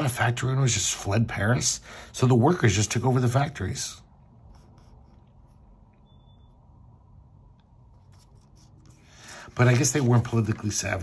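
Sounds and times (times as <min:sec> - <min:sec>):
faint high beep: 0:06.0 - 0:07.0
rustling comic book pages: 0:08.0 - 0:11.0.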